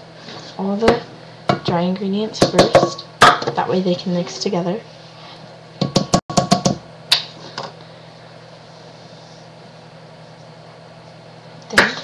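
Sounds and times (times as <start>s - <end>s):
steady low hum: 0.0s - 12.0s
utensils knocking on saucepan: 2.4s - 3.6s, 5.8s - 6.8s.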